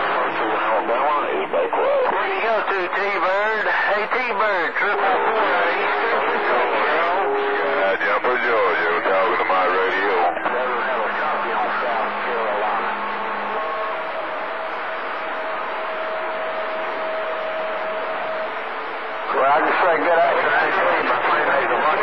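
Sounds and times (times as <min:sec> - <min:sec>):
distant radio voices: 0:00.0 - 0:22.0
radio static hiss: 0:00.0 - 0:22.0
radio carrier whistles: 0:12.8 - 0:21.5.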